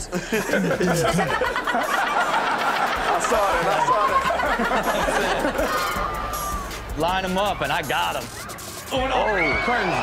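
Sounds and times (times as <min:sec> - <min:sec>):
people laughing: 0:00.0 - 0:06.6.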